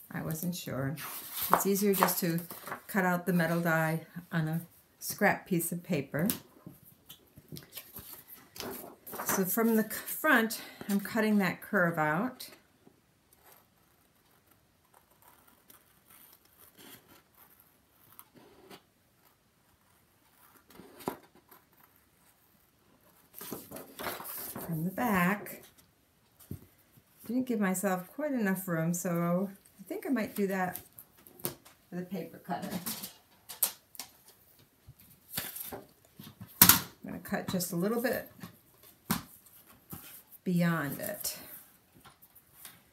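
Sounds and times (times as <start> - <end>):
paper rustling: 1.0 - 3.6, 19.2 - 25.7.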